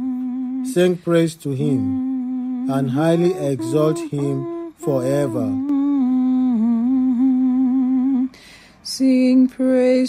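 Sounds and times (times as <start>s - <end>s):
person humming a held note: 0.0s - 8.3s
short breath: 8.3s - 8.8s.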